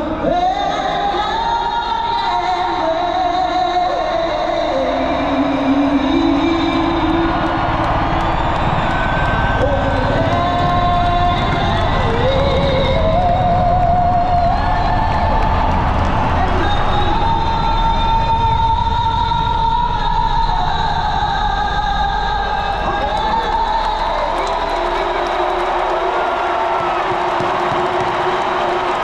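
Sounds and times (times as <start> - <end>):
woman singing over speakers: 0.0 - 8.2, 9.2 - 15.6, 16.3 - 26.3
crowd cheering: 0.0 - 29.0.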